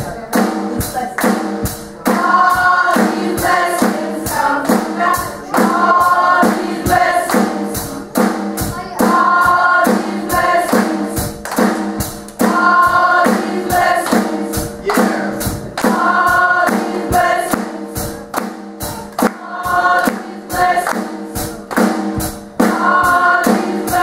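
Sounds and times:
steady percussive beat: 0.0s - 24.0s
gospel choir singing: 1.6s - 24.0s.

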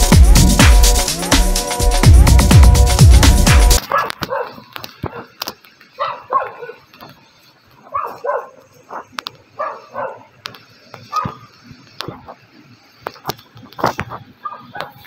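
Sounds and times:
electronic dance music: 0.0s - 3.8s
faint clicks: 3.8s - 15.0s.

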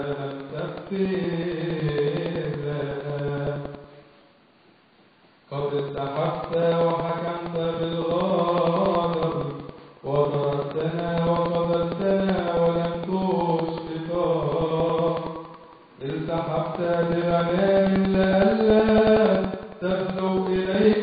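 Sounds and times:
man chanting: 0.0s - 4.0s, 5.5s - 21.0s.

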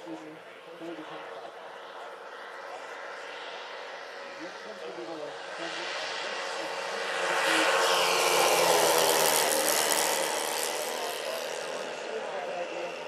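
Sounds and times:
model airplane propeller motors: 0.0s - 13.0s.

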